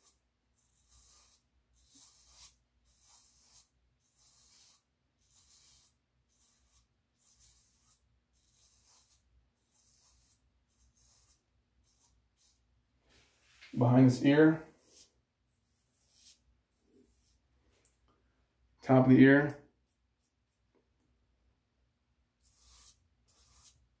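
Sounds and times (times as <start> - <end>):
razor scraping scalp stubble: 0.0 - 12.6, 22.4 - 23.8.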